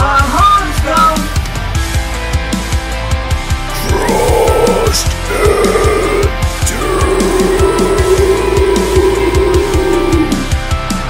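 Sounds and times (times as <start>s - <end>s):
distorted guitars: 3.7s - 10.6s.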